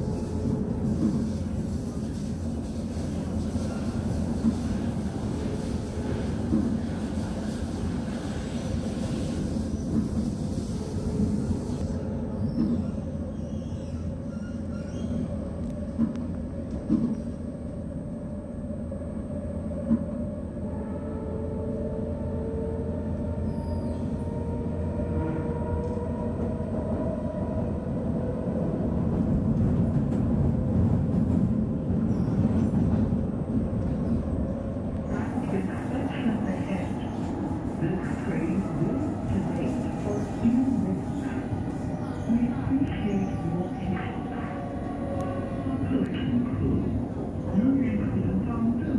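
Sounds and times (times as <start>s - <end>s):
train wheels rumbling on track: 0.0s - 17.5s, 28.6s - 48.9s.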